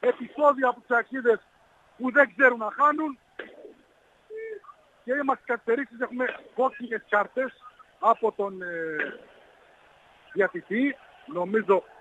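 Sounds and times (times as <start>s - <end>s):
man humming mm over phone line: 4.3s - 4.8s.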